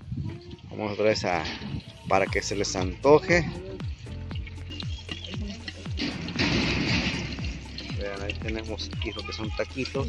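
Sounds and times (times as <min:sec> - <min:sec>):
background music with steady beat: 0:01.5 - 0:10.0.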